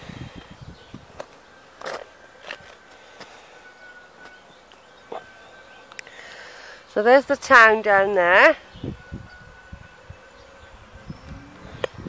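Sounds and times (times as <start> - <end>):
thin faint steady tone: 0.0 - 12.0.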